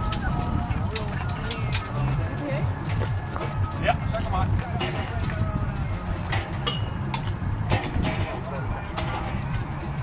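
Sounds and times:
faint voices: 0:00.0 - 0:10.0
wind rumbling on microphone: 0:00.0 - 0:10.0.

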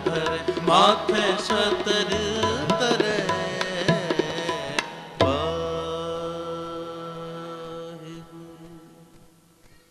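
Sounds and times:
tabla stroke with deep bass: 0:00.0 - 0:06.7.

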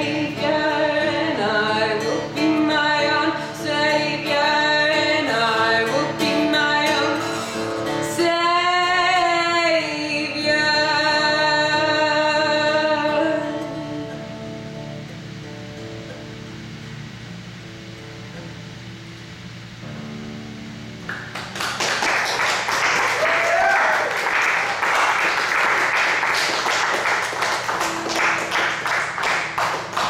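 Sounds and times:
audience applauding: 0:21.1 - 0:30.0.

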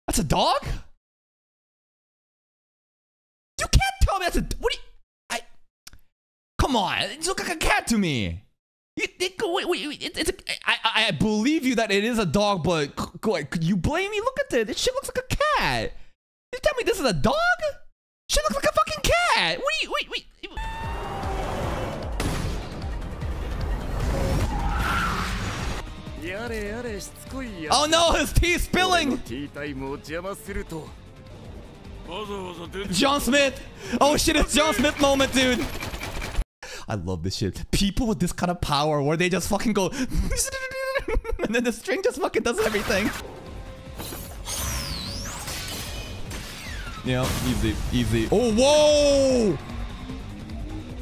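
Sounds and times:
background music: 0:20.6 - 0:35.6, 0:42.6 - 0:51.0.

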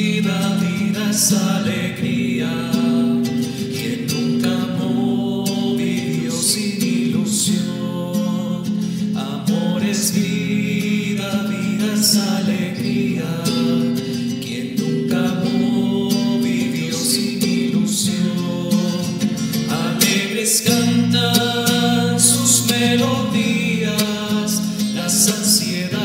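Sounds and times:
acoustic guitar: 0:00.0 - 0:26.0
person singing a hymn: 0:00.0 - 0:26.0.

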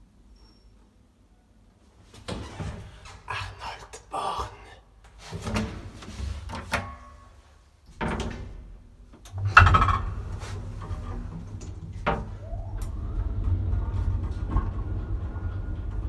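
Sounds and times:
elevator car rumbling: 0:09.2 - 0:16.0
elevator door banging shut: 0:09.3 - 0:15.8
elevator whine rising in pitch: 0:09.8 - 0:16.0.

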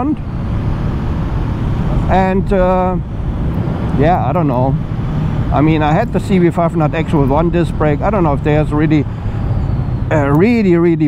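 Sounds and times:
wind rush and road noise: 0:00.0 - 0:11.0.

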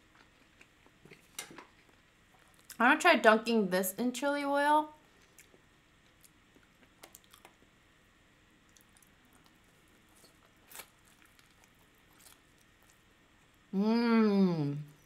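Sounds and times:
chewing and mouth sounds: 0:00.1 - 0:02.8, 0:05.1 - 0:07.7, 0:08.6 - 0:13.1.

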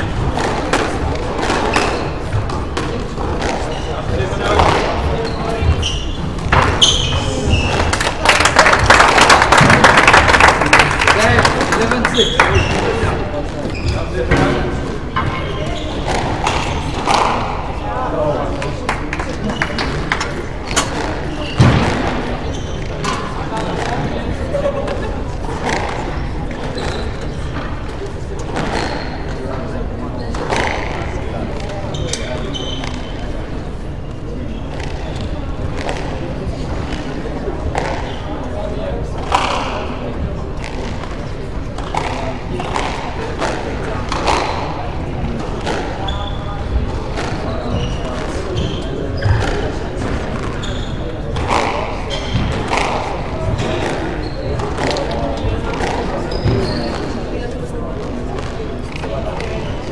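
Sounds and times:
people chattering in hall: 0:00.0 - 0:59.9.

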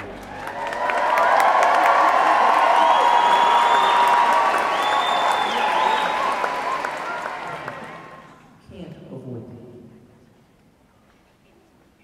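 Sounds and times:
audience applauding: 0:00.0 - 0:08.4
cheering: 0:00.0 - 0:08.4.

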